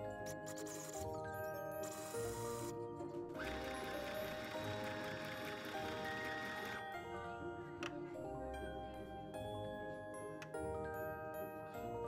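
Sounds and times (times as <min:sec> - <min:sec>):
background music: 0:00.0 - 0:12.0
sewing machine stitching: 0:03.4 - 0:06.8.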